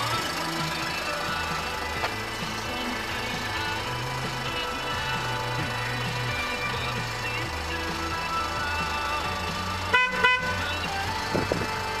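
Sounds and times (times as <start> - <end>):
background music: 0.0 - 12.0
van horn honks: 9.8 - 12.0.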